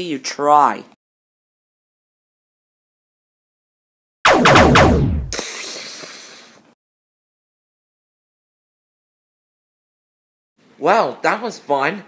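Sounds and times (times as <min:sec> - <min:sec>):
blaster shots falling in pitch: 0:04.3 - 0:05.5
hissing burst: 0:04.3 - 0:06.5.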